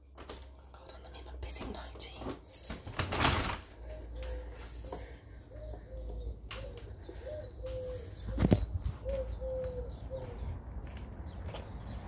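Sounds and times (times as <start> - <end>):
pigeon cooing: 3.8 - 10.5.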